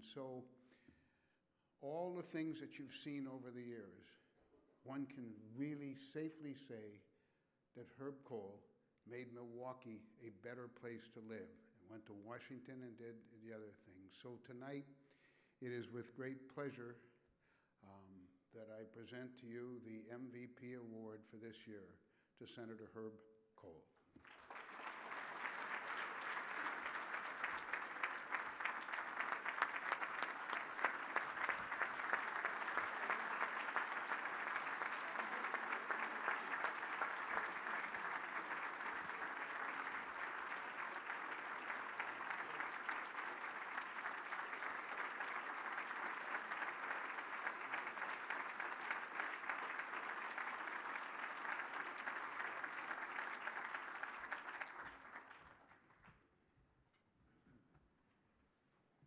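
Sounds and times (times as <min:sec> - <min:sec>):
audience applauding: 0:24.2 - 0:56.0.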